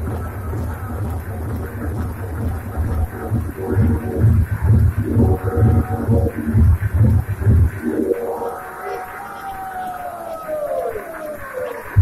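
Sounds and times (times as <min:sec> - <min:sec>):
heavy techno bass pulse: 0:00.0 - 0:09.2, 0:11.2 - 0:12.0
synth tones: 0:02.4 - 0:12.0.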